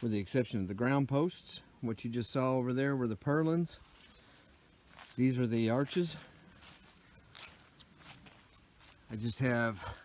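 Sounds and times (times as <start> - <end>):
footsteps through dry leaves: 3.4 - 10.0
person speaking: 4.9 - 8.1, 8.7 - 10.0.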